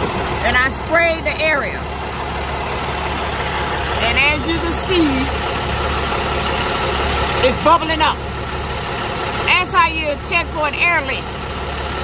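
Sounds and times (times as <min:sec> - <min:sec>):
diesel engine idling: 0:00.0 - 0:12.0.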